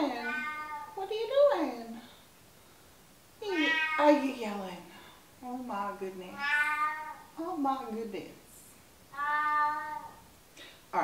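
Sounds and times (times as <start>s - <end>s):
cat meowing: 0.2s - 1.0s, 3.5s - 4.2s, 6.4s - 7.3s, 9.1s - 10.2s.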